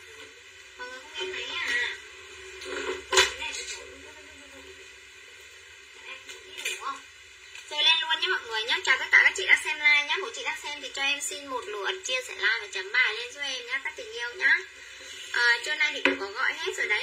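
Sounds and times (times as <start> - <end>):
woman speaking: 0.8 - 2.0, 7.7 - 14.7, 15.3 - 17.0.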